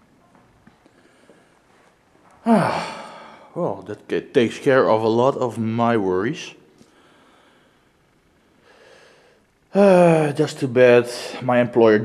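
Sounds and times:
man sighing: 2.4s - 3.8s, 9.8s - 10.3s.

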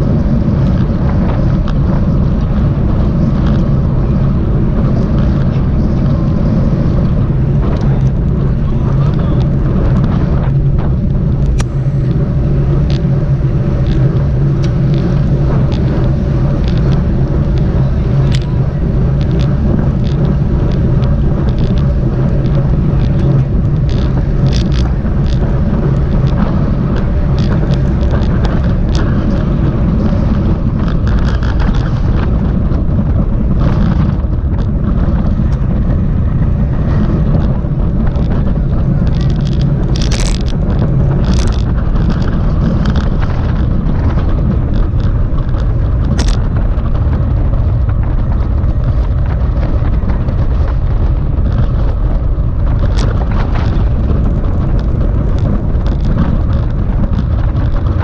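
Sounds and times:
tyres rumbling on asphalt: 0.0s - 58.0s
wind on microphone: 0.0s - 58.0s.

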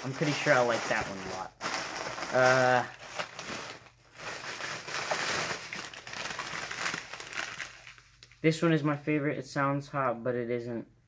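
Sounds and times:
plastic packets crinkling: 0.0s - 8.4s.

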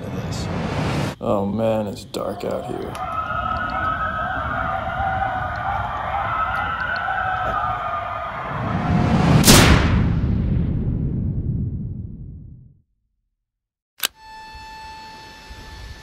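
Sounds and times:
loud whoosh and boom: 0.2s - 1.2s, 8.3s - 12.7s
coyotes howling: 1.9s - 9.0s.

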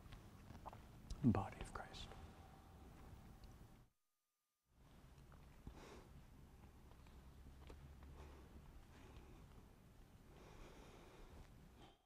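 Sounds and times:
man speaking quietly: 1.1s - 2.4s.

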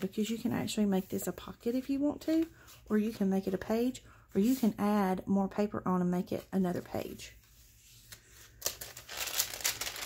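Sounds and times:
paper pages rustling: 7.4s - 10.0s.

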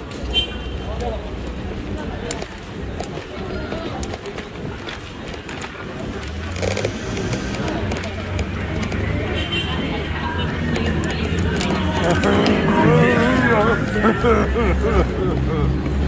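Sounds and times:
low rumble of traffic: 0.0s - 16.0s
passers-by talking: 0.0s - 16.0s.

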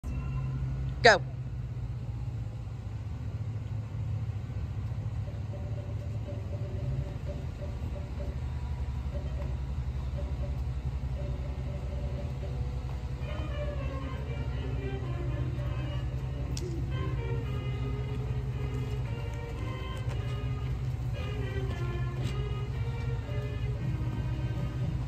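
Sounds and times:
music from speaker: 10.2s - 25.0s.

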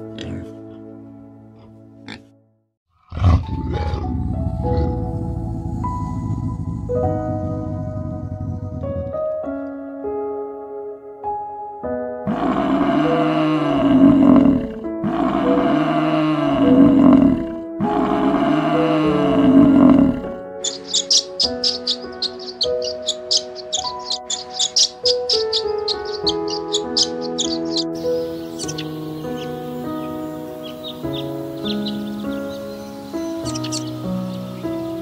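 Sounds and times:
soft piano music: 0.0s - 2.6s, 3.2s - 35.0s
buffalo bellowing: 3.0s - 9.4s, 12.3s - 35.0s
swallow twittering: 16.5s - 35.0s.

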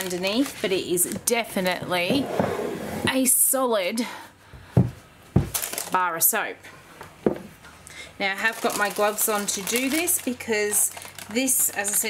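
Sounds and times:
paper crinkling: 0.0s - 1.7s, 8.4s - 12.0s.

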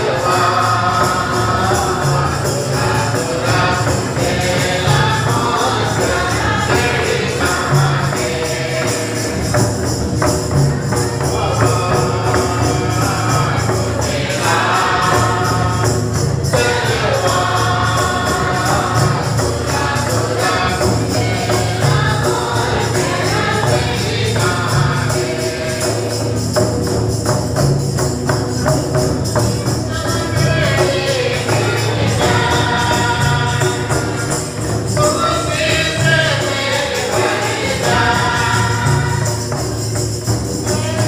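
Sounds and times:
hand drum: 0.0s - 41.0s
tambourine shaken: 0.0s - 41.0s
women's choir singing a hymn: 0.0s - 41.0s.

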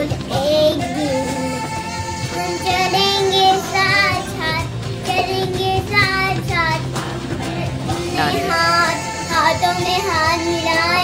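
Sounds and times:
background music: 0.0s - 11.0s
child singing: 0.0s - 11.0s.

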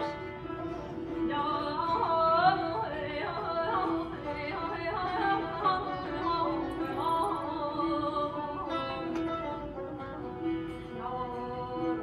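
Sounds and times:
plucked lute accompaniment: 0.0s - 12.0s
woman singing with ornaments: 1.3s - 9.2s.

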